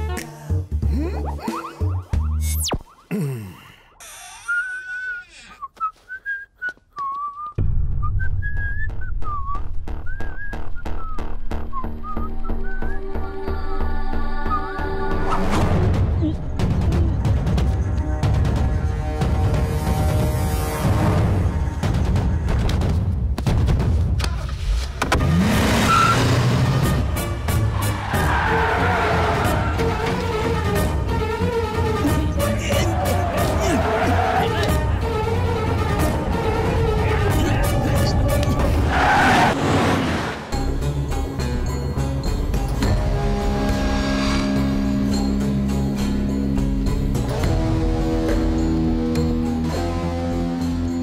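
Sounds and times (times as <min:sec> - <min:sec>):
person whistling a tune: 0:04.3 - 0:13.2
car engine revving: 0:25.1 - 0:31.3.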